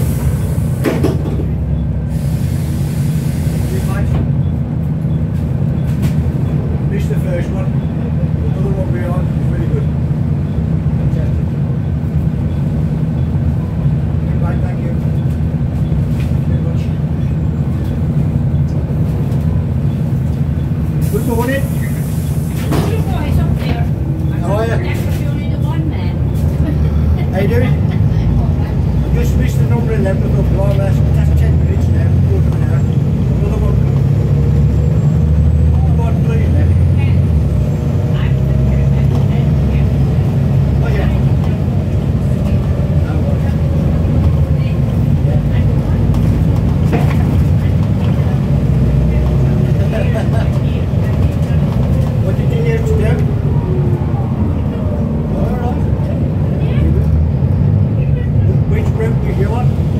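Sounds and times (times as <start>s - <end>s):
bus diesel engine rumbling: 0.0s - 59.9s.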